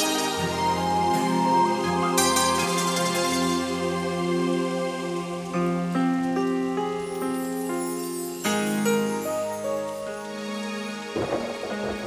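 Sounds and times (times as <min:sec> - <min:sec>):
background music of held notes: 0:00.0 - 0:12.0.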